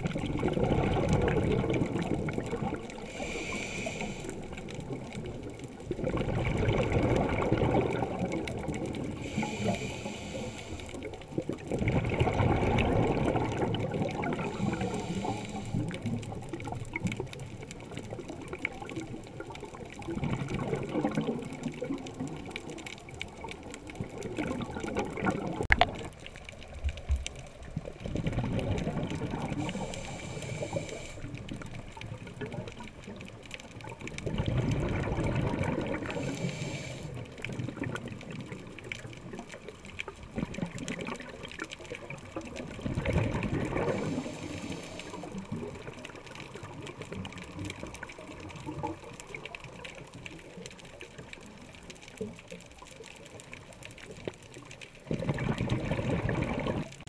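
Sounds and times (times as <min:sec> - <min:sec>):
exhaled bubbles rumbling: 0:00.0 - 0:57.0
regulator breathing hiss: 0:03.0 - 0:04.6, 0:09.2 - 0:11.1, 0:14.4 - 0:16.0, 0:29.6 - 0:31.4, 0:36.2 - 0:37.3, 0:43.9 - 0:45.4.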